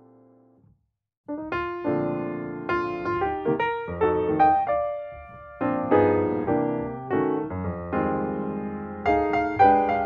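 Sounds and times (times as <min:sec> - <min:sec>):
piano music: 0:01.3 - 0:10.0.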